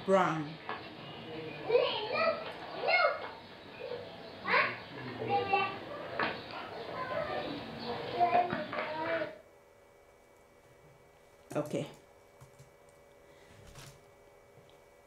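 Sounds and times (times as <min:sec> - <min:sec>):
people's voices: 0:00.1 - 0:09.4
children talking and calling out: 0:01.1 - 0:09.4.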